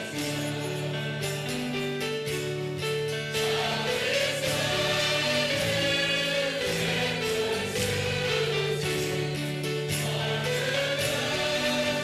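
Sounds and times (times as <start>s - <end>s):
steady musical accompaniment: 0.0s - 12.0s
choir singing held notes: 3.2s - 12.0s.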